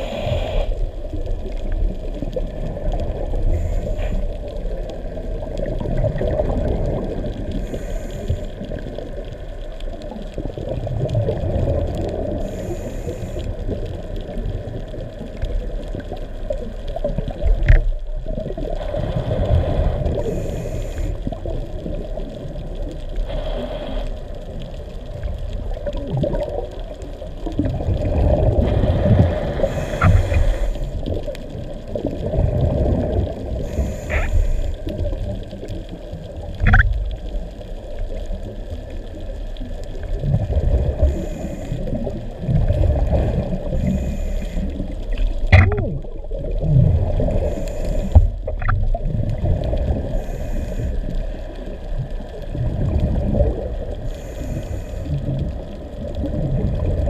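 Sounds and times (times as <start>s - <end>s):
underwater rush of water: 0.0s - 57.0s.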